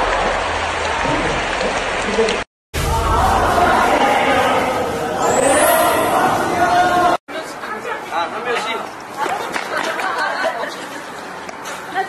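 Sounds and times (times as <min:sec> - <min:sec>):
people talking over one another: 0:02.8 - 0:08.1.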